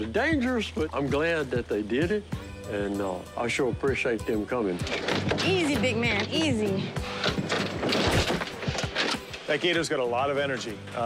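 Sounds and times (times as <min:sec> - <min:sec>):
alligator bumping truck bed: 0:04.8 - 0:09.5.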